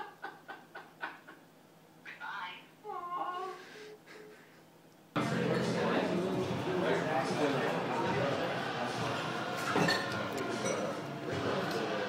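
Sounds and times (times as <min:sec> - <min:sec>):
man laughing hysterically: 0:00.0 - 0:01.4, 0:04.0 - 0:04.7.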